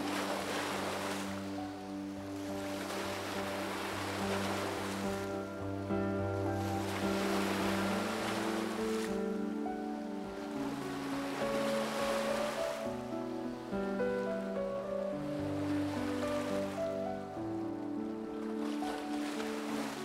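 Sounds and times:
sea water washing: 0.0s - 20.0s
slow held chords music: 0.0s - 20.0s.

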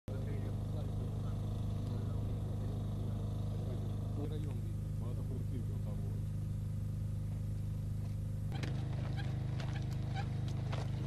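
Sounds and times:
low engine hum: 0.1s - 11.0s.

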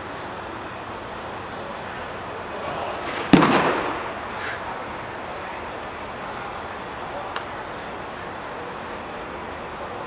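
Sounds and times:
baseball smacking target: 2.8s - 4.2s.

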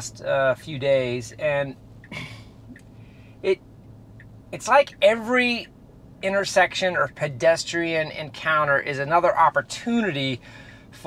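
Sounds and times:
man speaking: 0.0s - 1.8s, 4.6s - 10.4s
faint car cabin hum: 0.0s - 11.0s
man inhaling breath: 2.2s - 3.4s, 10.4s - 11.0s.

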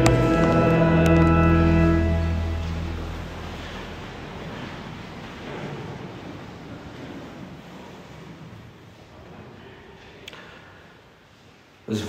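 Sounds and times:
steady rushing noise: 0.0s - 9.2s.

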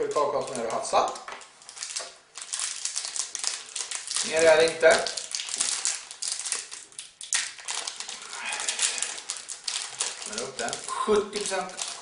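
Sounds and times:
person speaking: 0.0s - 1.4s, 4.2s - 5.3s, 10.1s - 12.0s
wrapper rustling and crinkling: 0.0s - 12.0s.

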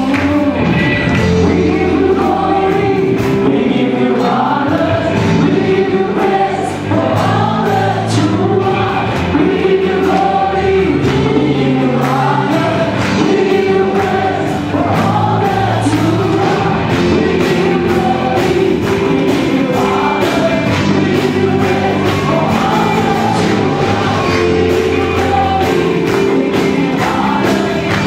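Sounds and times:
gospel singers with band: 0.0s - 28.0s.

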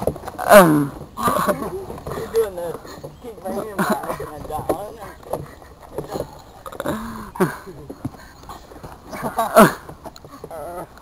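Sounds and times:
young men laughing and exclaiming: 0.6s - 6.2s, 7.1s - 8.1s, 9.1s - 10.9s.

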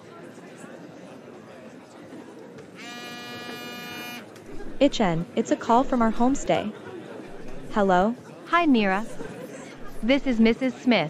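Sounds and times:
mobile phone buzzing: 2.8s - 4.3s.

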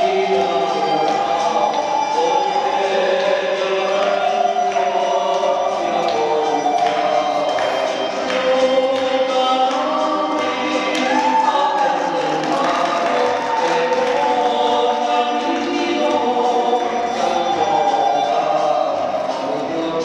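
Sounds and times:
choir singing held notes: 0.0s - 20.0s.

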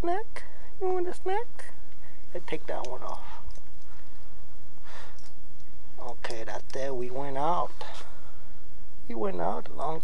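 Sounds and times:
breathy exhale: 4.8s - 5.2s.

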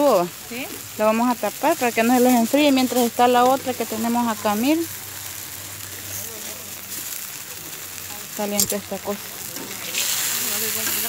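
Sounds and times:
beef sizzling on griddle: 0.0s - 11.0s.

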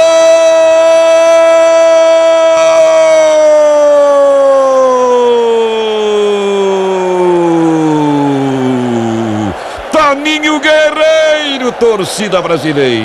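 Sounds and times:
commentator shouting goal: 5.2s - 13.0s.

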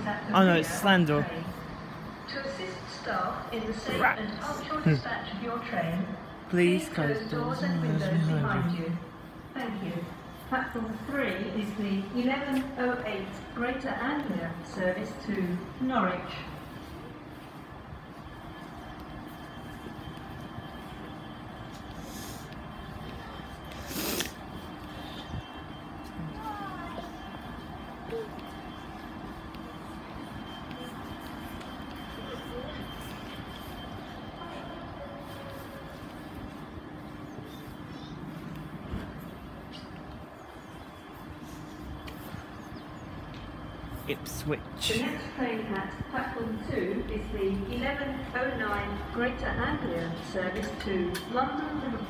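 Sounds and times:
station platform hum: 0.0s - 52.0s.

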